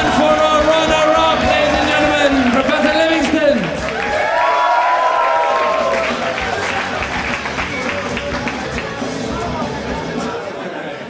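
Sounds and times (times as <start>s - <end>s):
music: 0.0s - 10.8s
crowd shouting and cheering: 0.0s - 11.0s.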